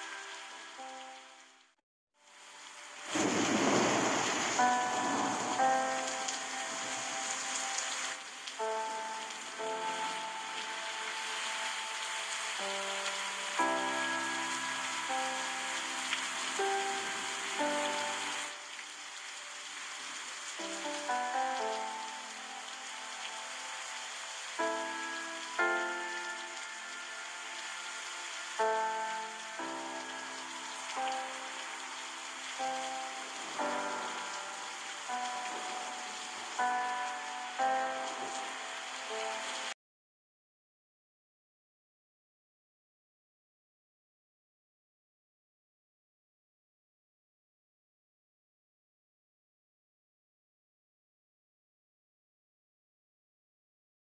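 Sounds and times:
gentle instrumental melody: 0.0 - 1.8, 3.8 - 39.8
rushing water: 0.0 - 39.8.

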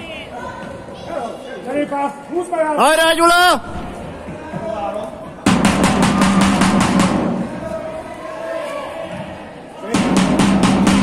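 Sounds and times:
drum beaten fast: 4.2 - 7.6, 9.9 - 11.0.

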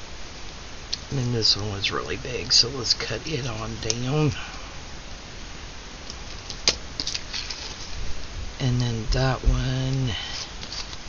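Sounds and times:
paper rustling: 6.3 - 8.0, 9.9 - 11.0.

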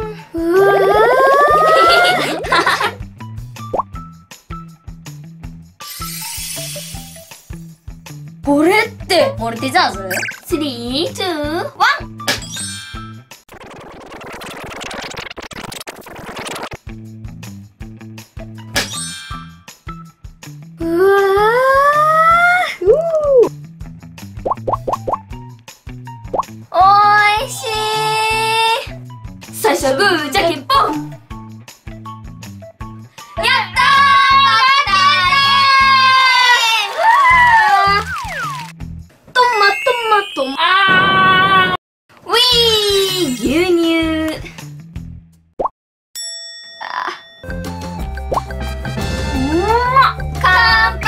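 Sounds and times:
cheerful children's music: 5.9 - 12.2, 25.4 - 38.8, 39.4 - 40.6, 46.8 - 51.0
background music with steady beat: 7.2 - 12.4
rising cartoon bloop: 10.1 - 10.5, 13.5 - 16.8
rising cartoon bloops: 10.1 - 10.5.

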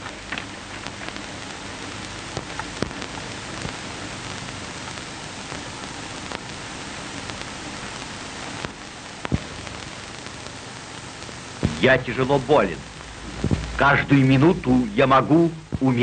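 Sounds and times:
film soundtrack hiss and crackles: 0.0 - 16.0.

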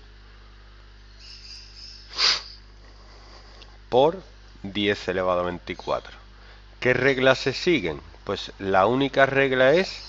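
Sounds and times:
faint high hiss: 0.0 - 10.0
low mains hum: 0.0 - 10.0
short breath: 2.1 - 3.8, 6.4 - 6.7.

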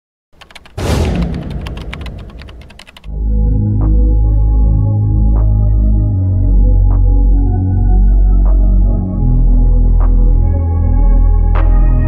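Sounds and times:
rapid sharp clicks: 0.4 - 3.1
loud whooshing hit: 0.8 - 2.7.

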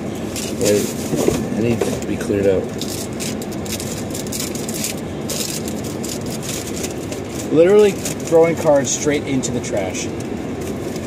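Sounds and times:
wrapper crinkling and tearing: 0.3 - 1.4, 2.0 - 8.9.

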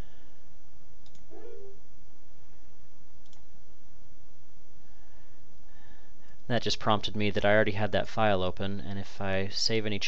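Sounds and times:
background hiss and low hum: 0.0 - 10.0
computer mouse click: 1.0 - 1.3, 3.2 - 3.5.

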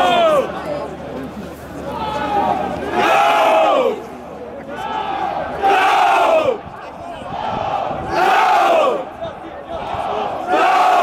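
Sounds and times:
crowd noise: 0.0 - 11.0
crowd chanting: 4.7 - 6.6, 7.3 - 11.0.

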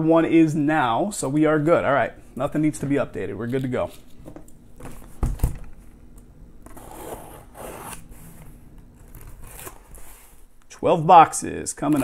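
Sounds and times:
packing tape and cardboard tearing: 6.6 - 8.4, 9.0 - 10.5.

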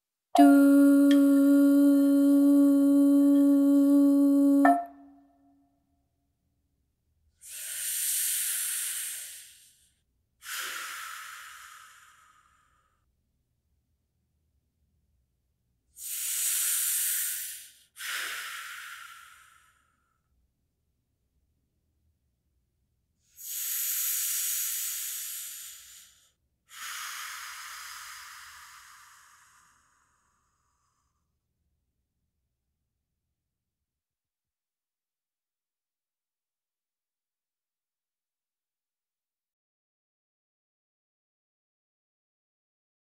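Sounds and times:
breathy hissing exhalations: 7.4 - 9.8, 10.4 - 12.8, 16.0 - 20.0, 23.3 - 31.2.

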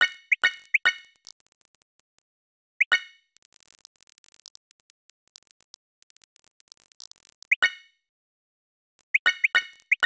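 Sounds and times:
message sent chirp and pop: 0.0 - 1.1, 2.8 - 3.2, 9.2 - 10.0.

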